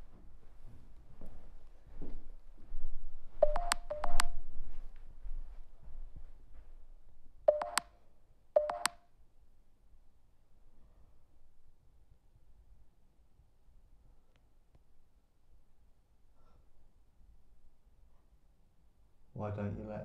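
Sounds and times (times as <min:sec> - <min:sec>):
short electronic chirps: 0:07.5 - 0:07.8.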